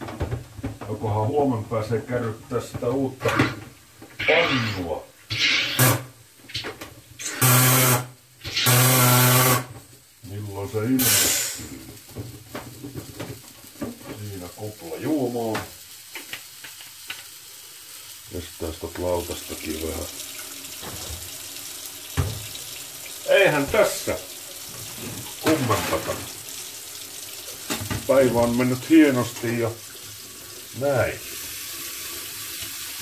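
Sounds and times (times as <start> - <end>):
tap water running into sink: 0.0 - 33.0.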